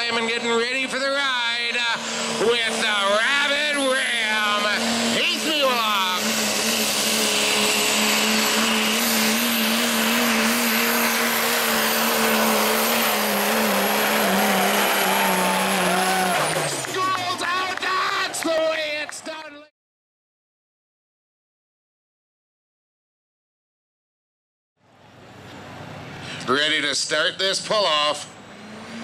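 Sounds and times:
diesel truck engine revving: 0:00.0 - 0:17.2, 0:25.1 - 0:29.0.

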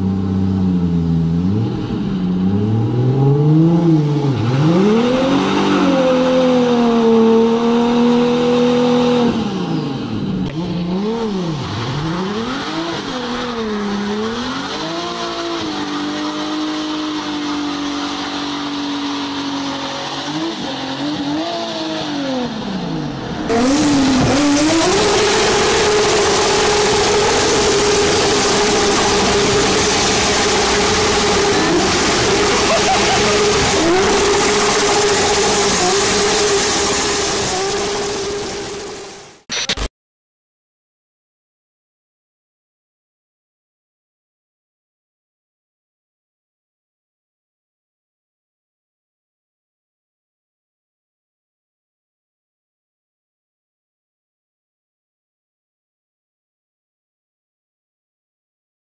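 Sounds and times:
engine revving: 0:00.0 - 0:39.7
loud steady rushing noise: 0:23.4 - 0:39.3.

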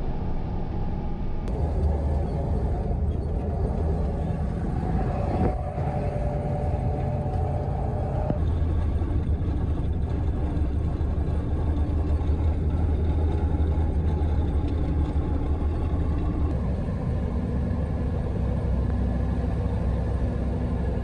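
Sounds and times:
truck engine and road rumble: 0:00.0 - 0:21.0.

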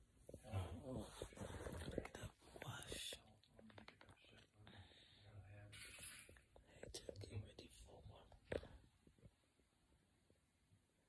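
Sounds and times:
faint whispered voices: 0:00.4 - 0:05.9.

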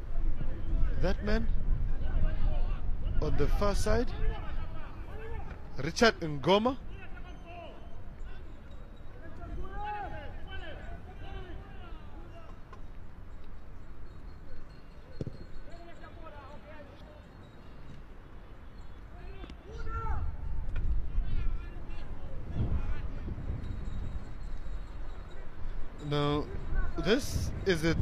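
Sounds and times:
players shouting: 0:06.8 - 0:12.8.

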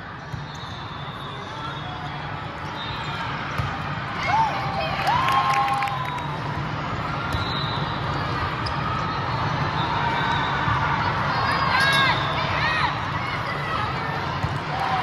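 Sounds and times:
volleyball hits and bounces: 0:03.4 - 0:03.9.

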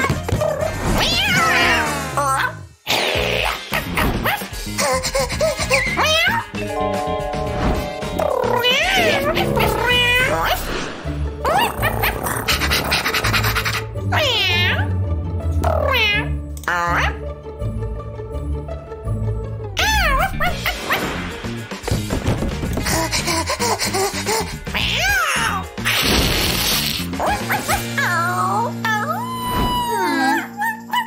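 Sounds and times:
cartoon background music: 0:00.0 - 0:31.0
cartoon voice cat-like cries: 0:00.4 - 0:04.1, 0:05.0 - 0:06.6, 0:08.2 - 0:10.6, 0:13.6 - 0:15.0, 0:15.6 - 0:17.2, 0:19.8 - 0:21.1, 0:24.7 - 0:26.0, 0:27.2 - 0:31.0.

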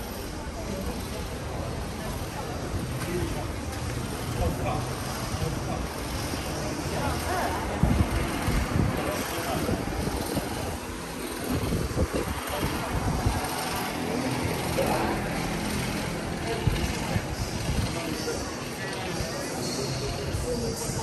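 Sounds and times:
low rumbling on microphone: 0:00.0 - 0:18.5
crowd chatter: 0:00.0 - 0:21.0.

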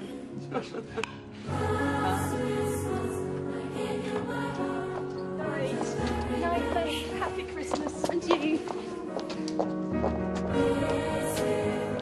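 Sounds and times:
choral music with held notes: 0:00.0 - 0:12.0.

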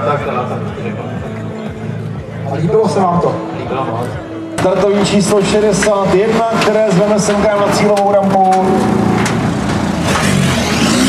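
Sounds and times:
rally car engine revving: 0:04.6 - 0:11.0.

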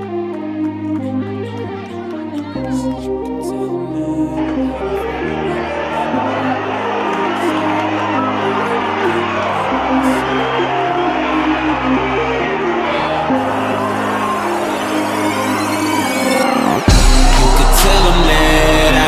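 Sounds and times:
background music with held chords: 0:00.0 - 0:19.0.

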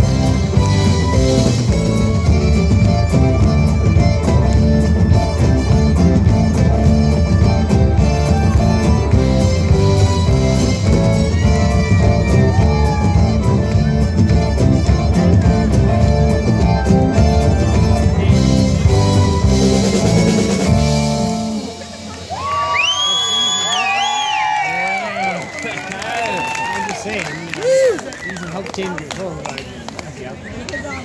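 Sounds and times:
live rock band playing: 0:00.0 - 0:24.0
audience cheering and whistling: 0:11.9 - 0:14.5, 0:22.3 - 0:28.8.

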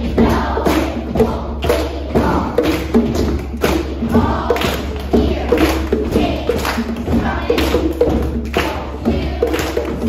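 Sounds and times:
children's choir singing: 0:00.0 - 0:10.0
hand drums beating: 0:00.0 - 0:10.0
children clapping: 0:01.6 - 0:10.0.

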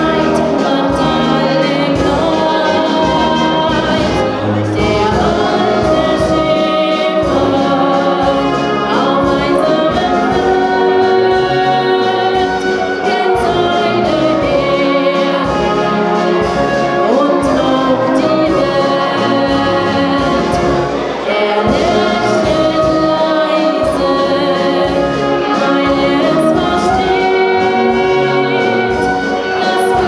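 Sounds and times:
brass band playing: 0:00.0 - 0:30.0
tubas playing bass line: 0:00.0 - 0:30.0
woman singing through microphone: 0:00.0 - 0:30.0.

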